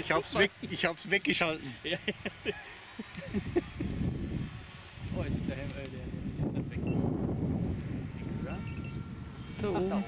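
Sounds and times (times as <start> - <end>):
wind buffeting microphone: 3.2 - 10.0.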